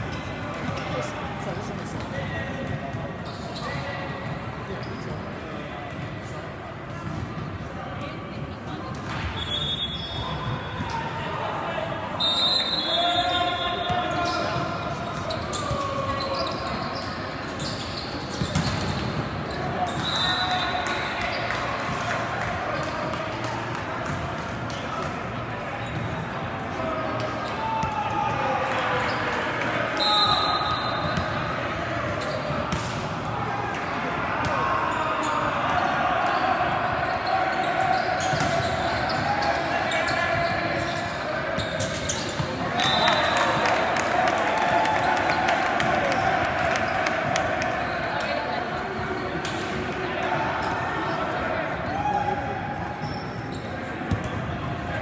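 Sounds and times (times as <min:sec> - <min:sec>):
players and spectators chattering: 0:00.0 - 0:55.0
referee's whistle blasts: 0:09.4 - 0:10.5, 0:12.2 - 0:14.5, 0:19.9 - 0:21.0, 0:30.0 - 0:31.4, 0:42.6 - 0:43.7.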